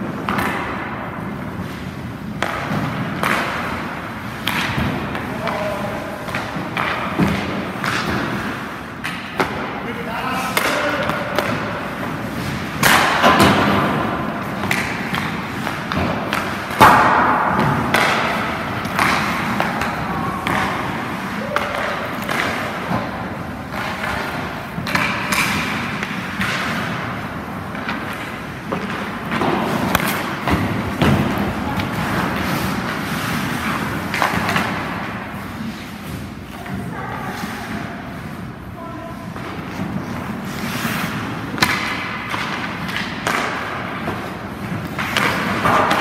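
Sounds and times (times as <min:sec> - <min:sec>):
hockey pucks hitting pads and boards: 0:00.0 - 0:46.0
voices: 0:36.5 - 0:39.5.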